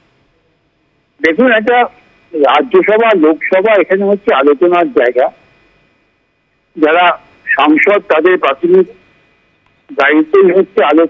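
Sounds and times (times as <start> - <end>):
person speaking over telephone: 1.2 - 5.4, 6.8 - 9.0, 9.9 - 11.0.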